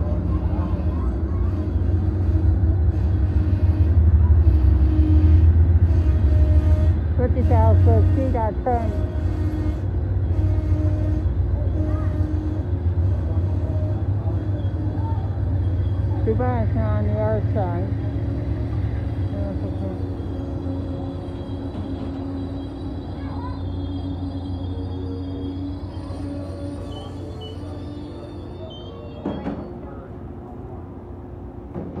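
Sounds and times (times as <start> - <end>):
train cars rumbling past: 0.0 - 32.0.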